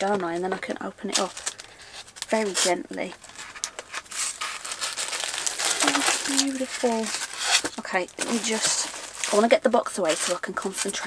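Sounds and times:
cardboard and foam rustling: 0.0s - 11.0s.

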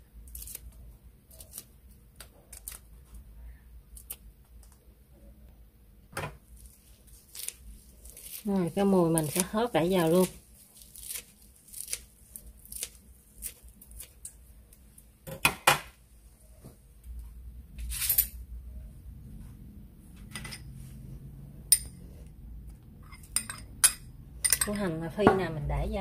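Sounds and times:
utensils and dishes clinking: 23.0s - 24.9s.

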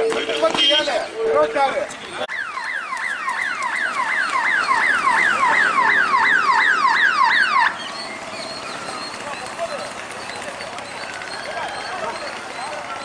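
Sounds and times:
electronic siren yelping: 0.0s - 13.0s.

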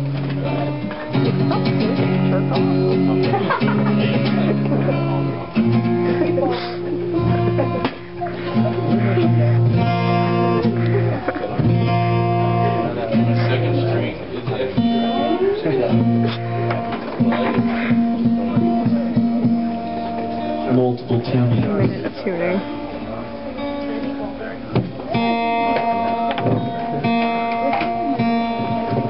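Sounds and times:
acoustic guitars strummed: 0.0s - 29.0s.

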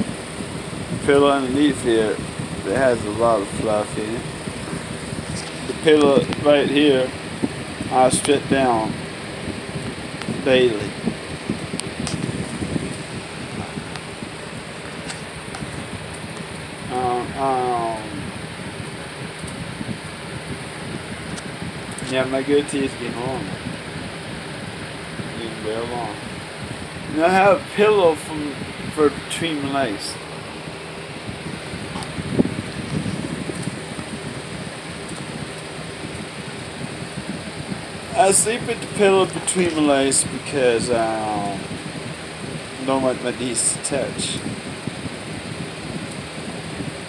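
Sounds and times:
electric fan whooshing: 0.0s - 47.0s.

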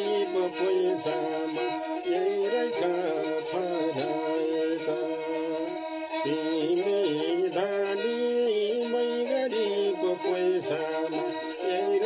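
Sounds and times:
bowed string instrument: 0.0s - 12.0s
man singing folk song: 0.0s - 12.0s.

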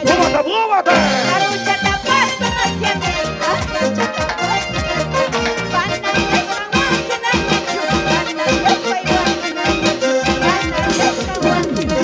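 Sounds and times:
andean band dance music: 0.0s - 12.0s
reedy melody: 0.0s - 12.0s.

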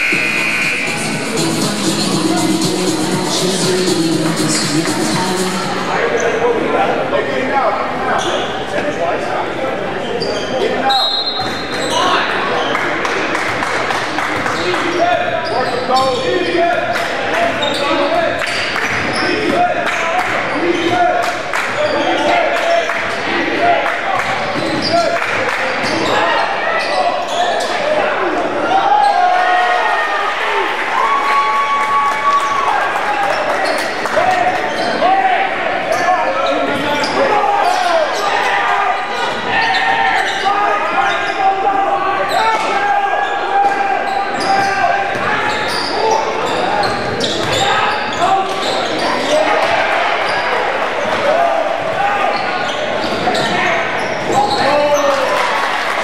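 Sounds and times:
players and spectators calling out: 0.0s - 56.0s.

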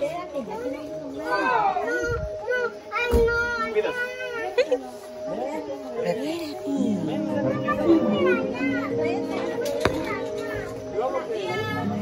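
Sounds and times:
adult chatter: 0.0s - 12.0s
background music: 0.0s - 12.0s
children playing and calling out: 0.0s - 12.0s.

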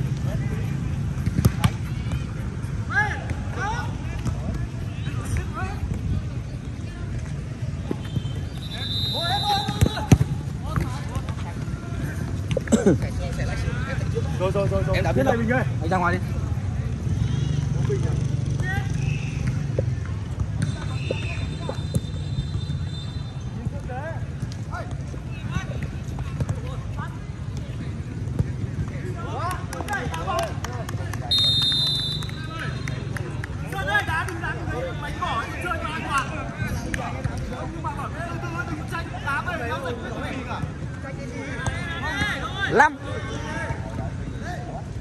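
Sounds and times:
players shouting: 7.9s - 12.3s, 31.2s - 44.7s.

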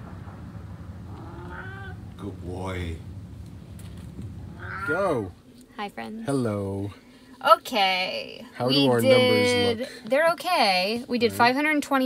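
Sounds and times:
cat meowing: 1.1s - 2.0s, 4.5s - 5.3s.

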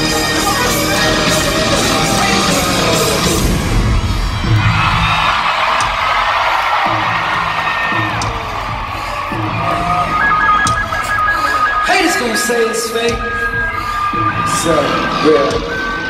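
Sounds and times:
live band music over sound system: 0.0s - 4.2s, 9.4s - 16.0s
crowd cheering: 0.0s - 16.0s
held synth tones: 6.9s - 16.0s
deep bass notes pulsing: 12.9s - 16.0s.

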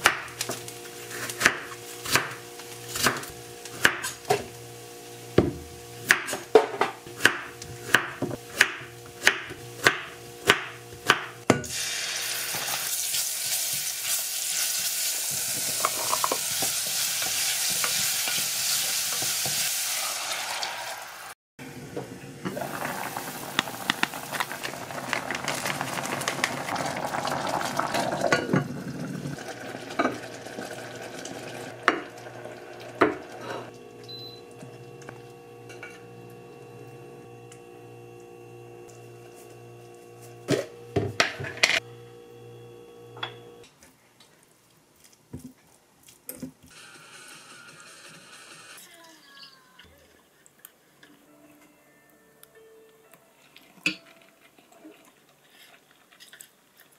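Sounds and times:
vegetables sizzling in oil: 11.6s - 21.4s, 22.5s - 36.7s
utensil stirring and scraping: 14.8s - 19.6s.

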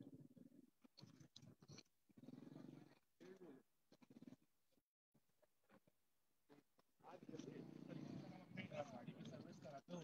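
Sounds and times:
faint voices of people talking: 5.3s - 10.0s.

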